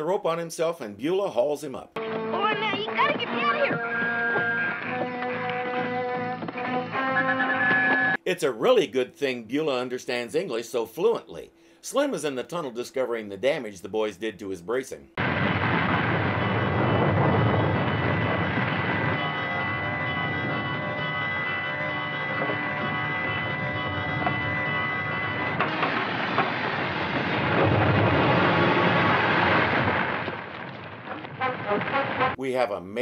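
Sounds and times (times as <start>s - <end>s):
rumble of falling rock: 25.6s - 32.4s.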